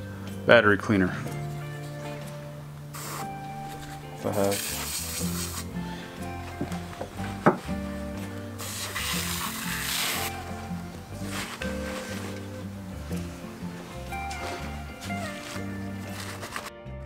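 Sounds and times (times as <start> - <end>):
background music with steady beat: 0.0 - 17.0
aerosol can spraying: 2.9 - 12.6.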